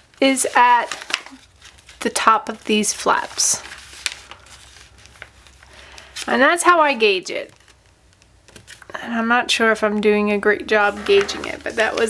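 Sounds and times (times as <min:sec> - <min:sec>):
paper rustling and creasing: 0:00.0 - 0:09.0, 0:10.6 - 0:12.0.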